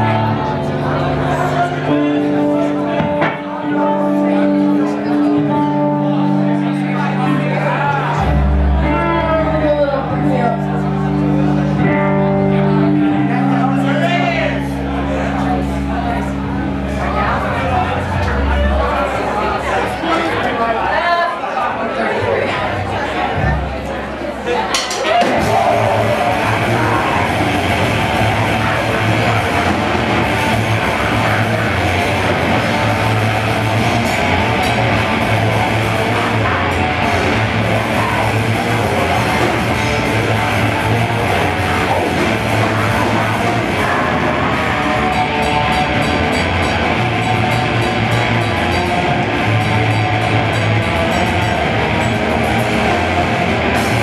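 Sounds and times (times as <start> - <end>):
drums: 0.0 - 20.2, 22.2 - 54.0
distorted electric guitar: 0.0 - 20.6, 24.7 - 54.0
sustained bass notes: 0.0 - 21.0, 21.8 - 54.0
crowd chatter: 0.0 - 54.0
low amplified drone: 25.4 - 54.0.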